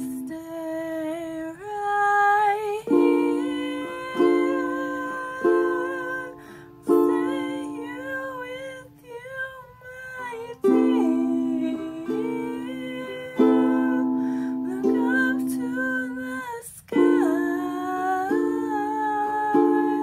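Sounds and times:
strummed string instrument chords: 0.0s - 1.4s, 2.4s - 20.0s
woman singing slow song: 0.0s - 20.0s.

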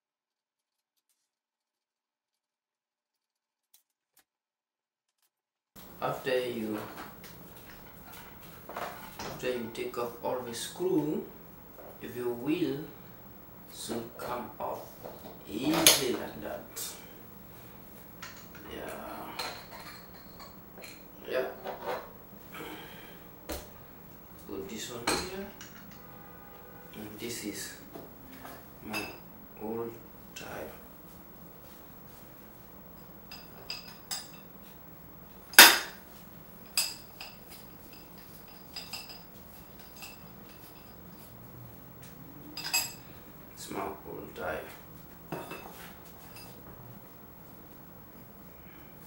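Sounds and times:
metal clinks and knocks: 25.2s - 26.3s.

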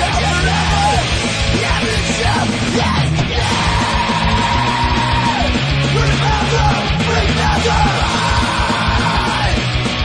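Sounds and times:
loud rock music with vocals: 0.0s - 10.0s.

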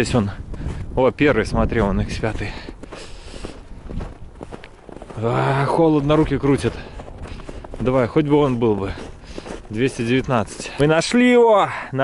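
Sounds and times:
footsteps of person walking: 0.1s - 11.2s.

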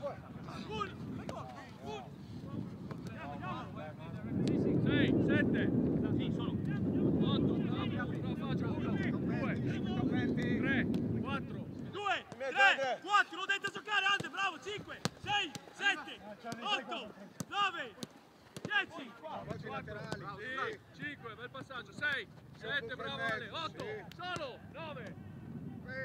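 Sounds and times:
players calling and shouting: 0.0s - 4.2s, 6.3s - 26.0s
wind rumble on microphone: 0.0s - 12.0s, 24.6s - 26.0s
footballs being kicked: 17.4s - 20.4s, 23.2s - 25.2s.

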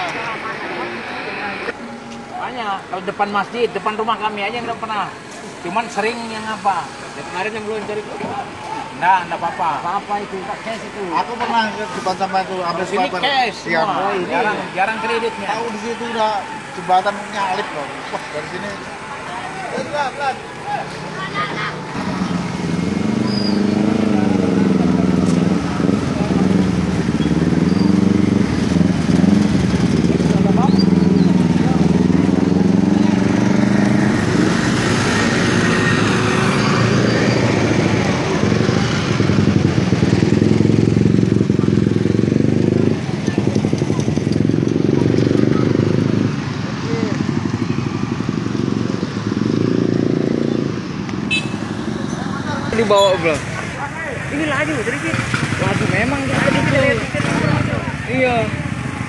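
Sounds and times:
vehicle engine rumbling: 0.0s - 59.0s.

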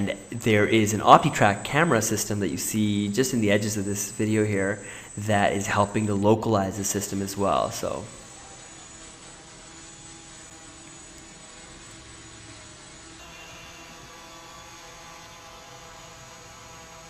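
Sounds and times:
quadrotor propellers humming: 0.0s - 17.0s.

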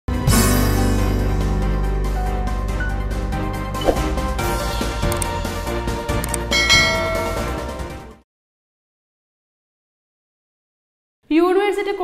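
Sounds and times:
background music: 0.1s - 8.2s
bright bell chime: 6.5s - 7.8s.

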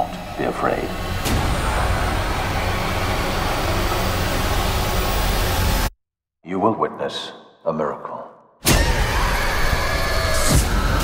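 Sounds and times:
faint rising whine: 0.0s - 5.9s
dense swell of noise: 0.7s - 5.9s.

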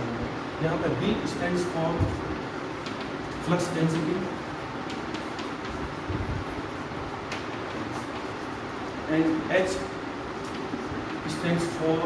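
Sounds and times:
background rumble and hiss: 0.0s - 12.0s
chalk ticking on chalkboard: 4.8s - 6.6s, 7.2s - 8.8s, 10.3s - 11.9s.

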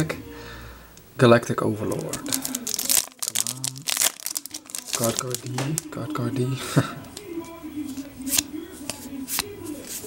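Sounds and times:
foil wrapper crinkling and tearing: 1.8s - 6.2s.

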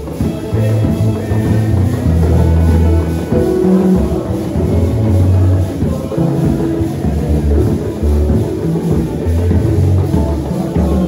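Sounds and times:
music with bass guitar and drums: 0.0s - 11.0s.

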